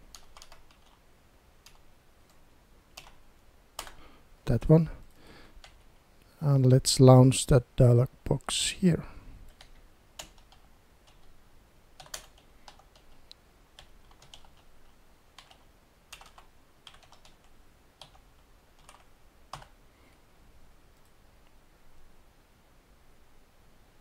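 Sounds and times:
typing on computer keyboard: 0:00.1 - 0:01.0, 0:01.6 - 0:03.2, 0:03.8 - 0:04.0, 0:09.5 - 0:11.3, 0:12.0 - 0:13.2, 0:13.8 - 0:19.7.

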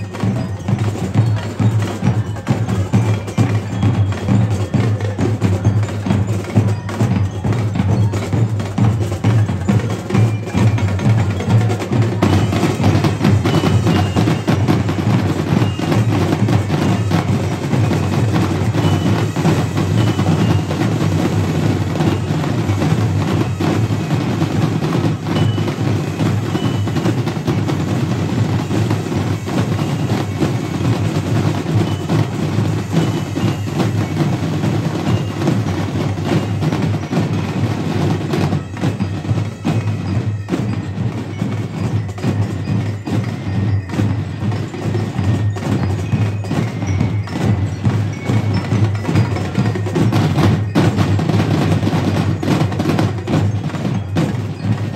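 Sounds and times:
snare and tenor drums: 0:00.0 - 0:54.9
high bell-like notes: 0:25.2 - 0:27.9.

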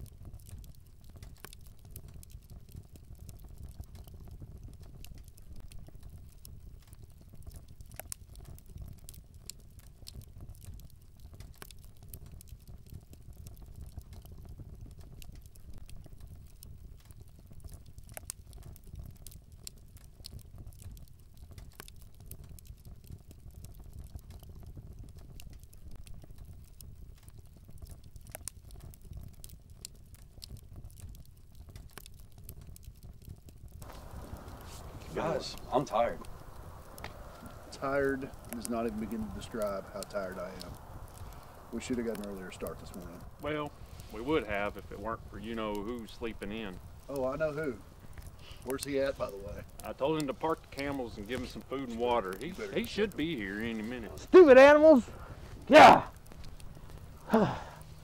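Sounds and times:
small clicks and crackles: 0:00.0 - 0:58.0
faint low rumble: 0:32.2 - 0:54.4.

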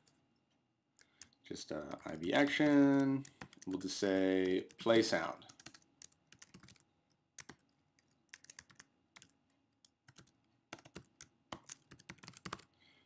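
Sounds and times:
computer keyboard typing: 0:02.9 - 0:12.7.

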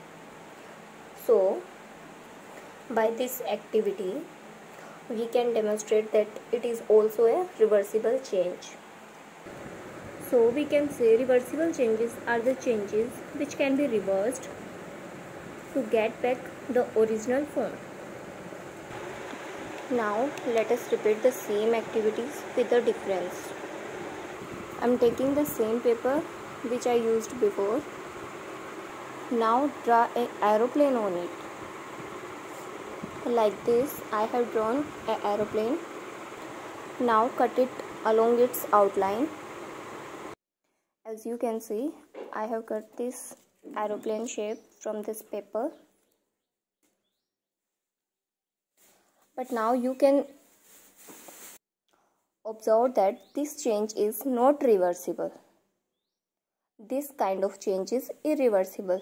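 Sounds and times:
room noise hiss: 0:00.0 - 0:40.4.

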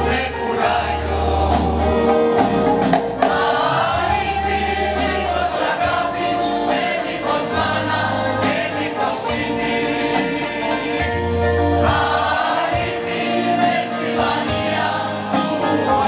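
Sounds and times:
instrumental accompaniment with beat: 0:00.0 - 0:16.0
mixed choir singing: 0:00.0 - 0:16.0.

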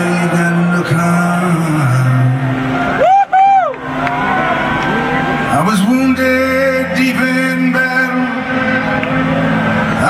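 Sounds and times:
man singing live: 0:00.0 - 0:02.7, 0:05.5 - 0:10.0
high vocal whoo: 0:03.0 - 0:04.7.

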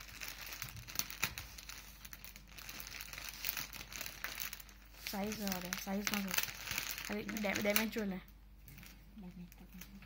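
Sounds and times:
fabric rustling and crinkling: 0:00.0 - 0:10.0.

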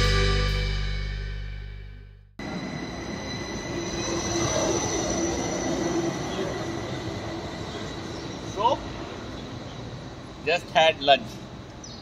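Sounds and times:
electric train humming and whining: 0:02.4 - 0:10.5.

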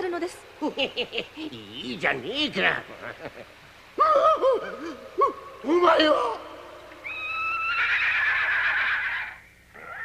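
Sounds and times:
horse neighing: 0:07.1 - 0:10.0.

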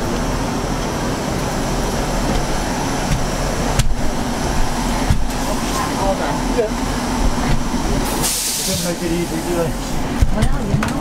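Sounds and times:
train engine idling: 0:00.0 - 0:11.0.

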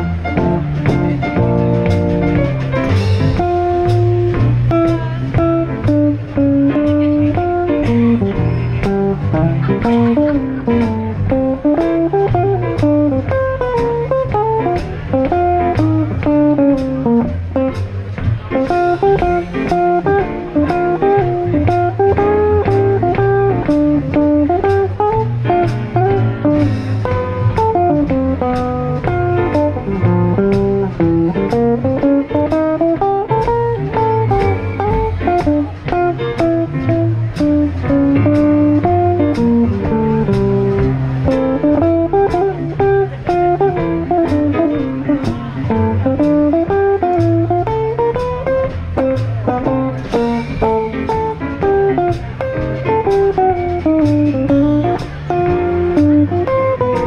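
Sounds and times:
electric guitar melodic lines: 0:00.0 - 0:57.0
plucked double bass: 0:00.0 - 0:57.0.

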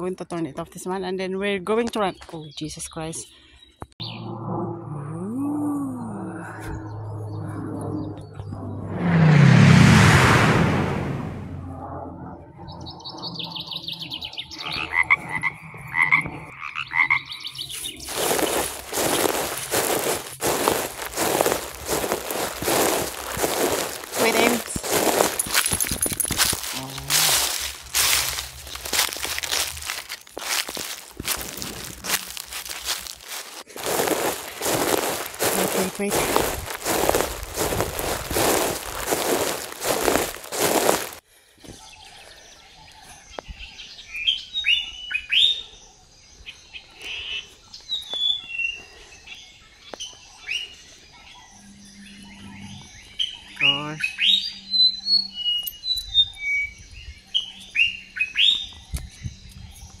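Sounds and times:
birds singing: 0:01.7 - 0:04.3, 0:12.6 - 0:25.8, 0:26.5 - 1:00.0
footsteps through long grass: 0:17.7 - 0:41.2.

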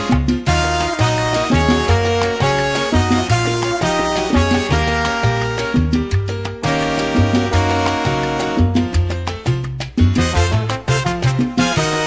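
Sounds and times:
salsa backing track: 0:00.0 - 0:12.0.

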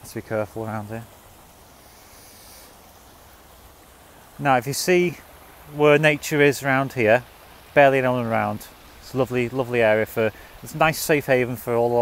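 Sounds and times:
stream babbling over stones: 0:00.0 - 0:12.0.

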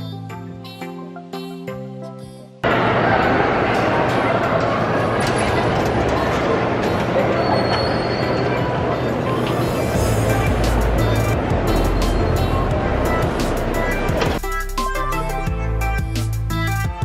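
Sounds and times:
background music with bass line: 0:10.0 - 0:17.0.

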